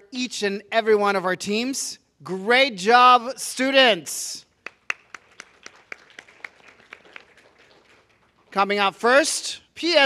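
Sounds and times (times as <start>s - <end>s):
light applause: 4.6s - 8.6s.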